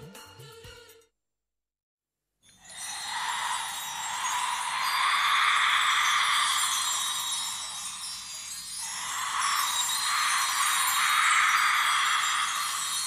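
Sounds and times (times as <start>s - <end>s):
shimmering chimes: 2.4s - 13.0s.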